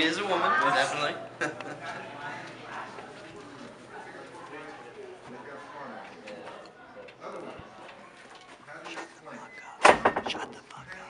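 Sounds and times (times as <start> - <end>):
muffled voices: 0.0 - 11.0.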